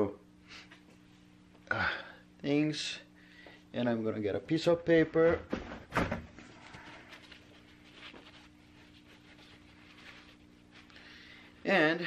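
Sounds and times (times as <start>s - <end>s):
steady low hum: 0.0s - 12.0s
paper towel rustling: 6.4s - 12.0s.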